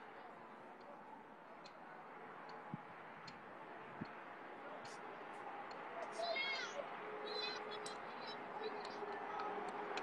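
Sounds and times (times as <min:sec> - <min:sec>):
distant high-pitched yell: 0:06.0 - 0:10.0.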